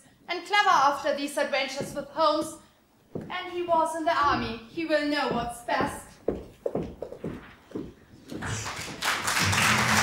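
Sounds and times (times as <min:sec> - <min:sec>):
audience applause: 0:08.4 - 0:10.0.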